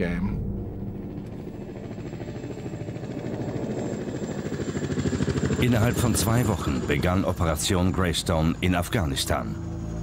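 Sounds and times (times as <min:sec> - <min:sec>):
helicopter rotor blades beating: 0:00.1 - 0:10.0.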